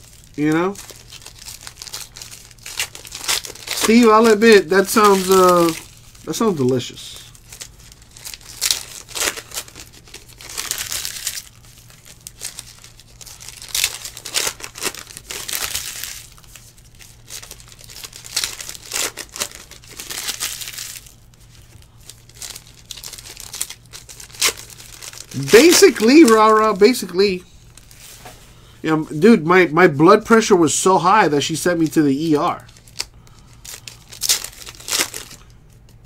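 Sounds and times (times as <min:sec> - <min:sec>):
foil wrappers crinkling and tearing: 0:00.0 - 0:28.2, 0:30.2 - 0:36.0.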